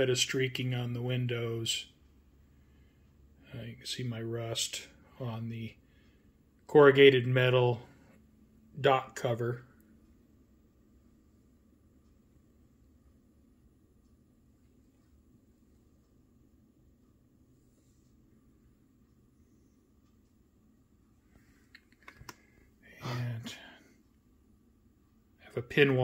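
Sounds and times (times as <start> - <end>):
soft clicks: 9.3 - 22.8.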